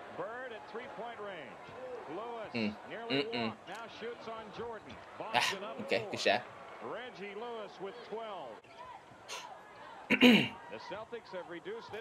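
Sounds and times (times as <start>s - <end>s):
commentator talking: 2.5s - 6.4s, 10.1s - 10.6s.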